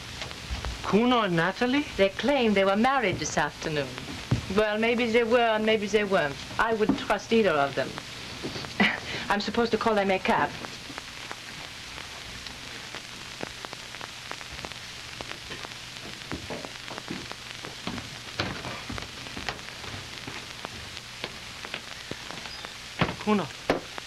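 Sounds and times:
film soundtrack hiss and crackle: 0:00.0 - 0:24.0
faint clicks and knocks: 0:14.3 - 0:24.0
person speaking: 0:23.1 - 0:23.6.

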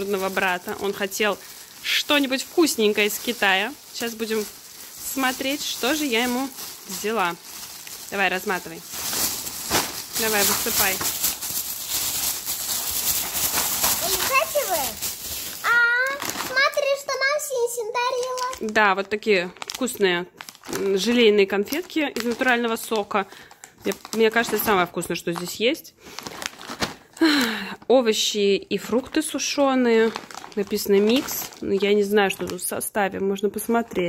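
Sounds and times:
plastic bag crinkling: 0:00.0 - 0:28.2, 0:28.8 - 0:32.8.

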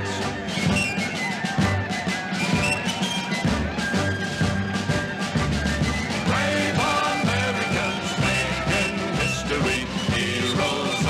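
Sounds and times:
country band instrumental: 0:00.0 - 0:11.0
steady drum beat: 0:00.0 - 0:11.0.

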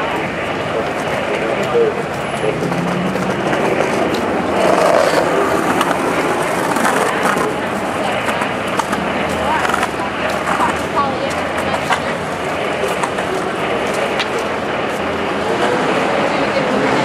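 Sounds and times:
indistinct voices: 0:00.0 - 0:17.0
steady traffic: 0:00.0 - 0:17.0.

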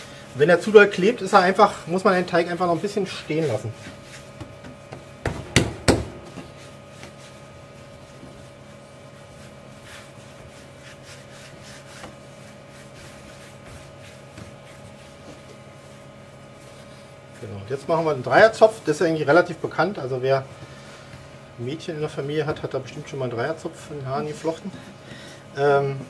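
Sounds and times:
hands rolling dough: 0:00.0 - 0:26.0
sharp knocks: 0:04.9 - 0:06.4.

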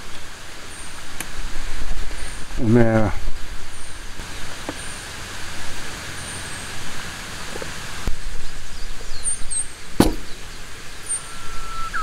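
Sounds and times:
outdoor hiss: 0:00.0 - 0:12.0
faint high chirp: 0:11.0 - 0:12.0.

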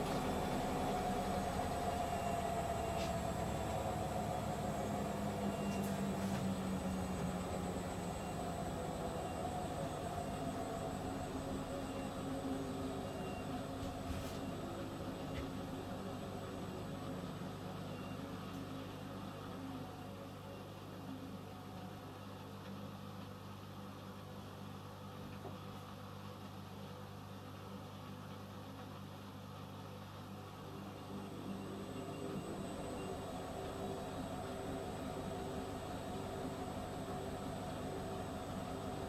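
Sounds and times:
washing machines spinning: 0:00.0 - 0:39.0.

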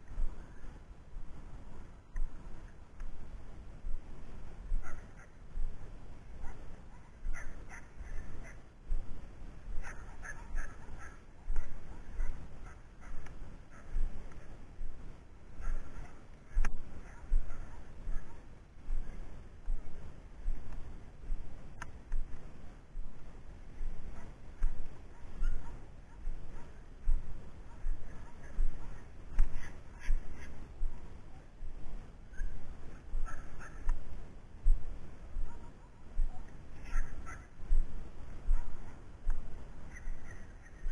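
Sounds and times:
puppy barking: 0:04.8 - 0:05.4, 0:06.4 - 0:08.6, 0:09.8 - 0:14.0, 0:17.0 - 0:18.5, 0:25.1 - 0:26.8, 0:35.4 - 0:37.5, 0:38.5 - 0:39.0.

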